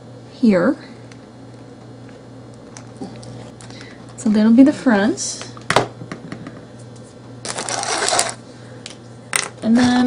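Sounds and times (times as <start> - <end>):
rustling and scraping on steel table: 6.8 - 8.4.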